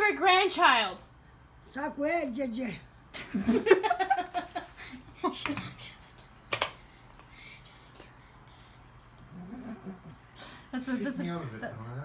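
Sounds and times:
woman speaking: 0.0 - 1.1
woman laughing: 3.3 - 5.6.

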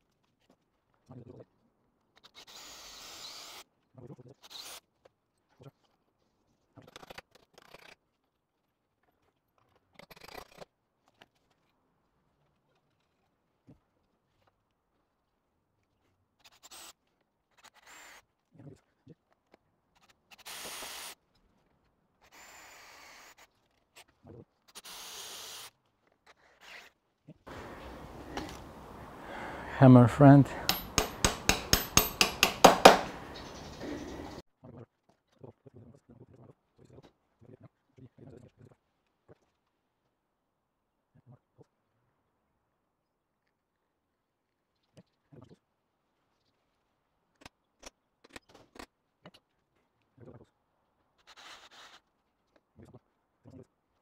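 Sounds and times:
hammer blows on metal: 27.5 - 33.4.

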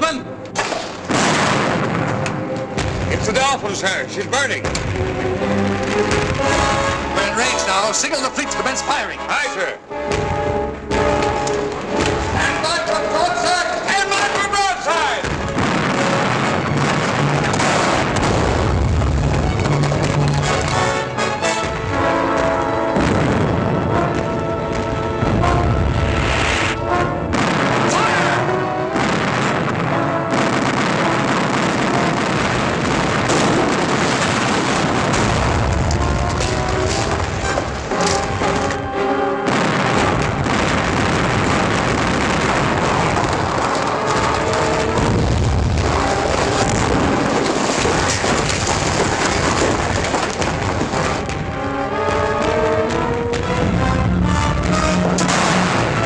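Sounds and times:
film score music: 0.0 - 56.0
cannon fire booms: 0.6 - 4.0, 4.6 - 7.5, 10.1 - 12.7, 15.2 - 56.0
explosions: 0.6 - 8.4, 10.1 - 13.0, 13.9 - 56.0.

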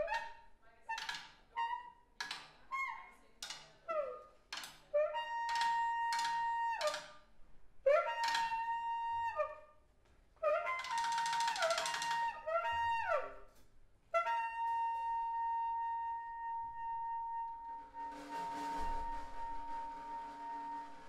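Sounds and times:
tenor saxophone improvising: 0.0 - 7.2, 8.0 - 9.4, 10.5 - 13.2.

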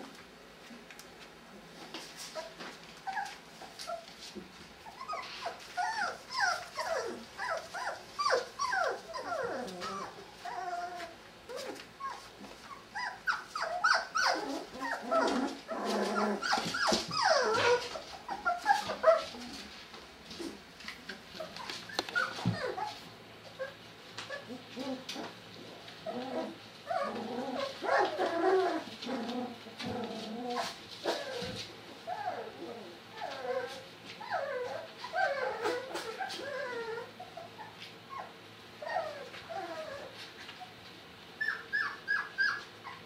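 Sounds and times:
puppies whining and yipping: 2.3 - 19.7, 21.4 - 25.4, 26.0 - 40.8, 41.4 - 43.0.

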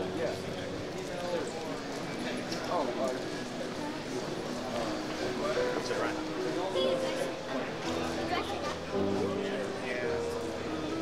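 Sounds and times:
indistinct chatter of crowd: 0.0 - 11.0.

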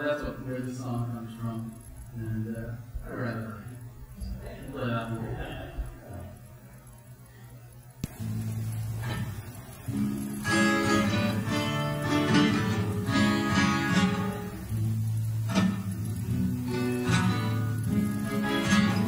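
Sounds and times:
solo acoustic guitar: 8.1 - 19.0.

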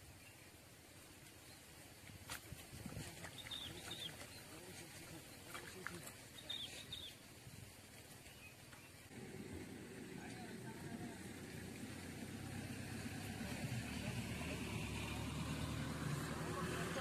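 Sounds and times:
faint outdoor ambience: 0.0 - 17.0
small bird chirping: 3.3 - 9.1.

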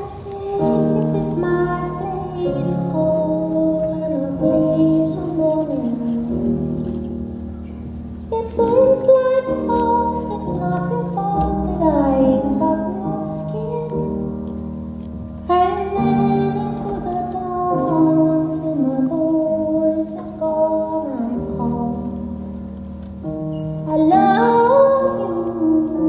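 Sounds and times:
woman singing a slow song: 0.0 - 6.7, 8.3 - 14.5, 15.4 - 22.5, 23.8 - 26.0.

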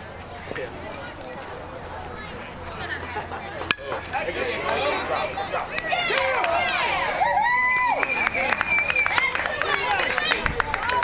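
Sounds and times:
baseball bat hitting ball: 3.6 - 4.8
spectators shouting: 3.8 - 11.0.

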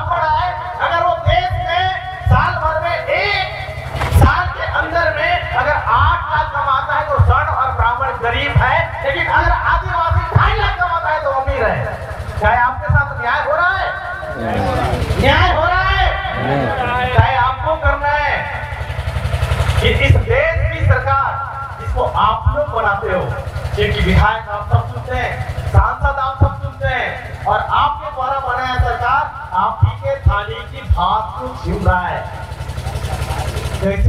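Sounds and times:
man's amplified voice: 0.0 - 18.8, 19.7 - 34.0
vehicle engine rumbling: 0.0 - 34.0.

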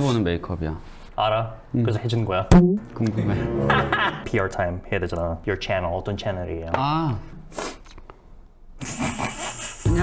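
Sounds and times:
soft breathy laughter: 8.8 - 9.9.

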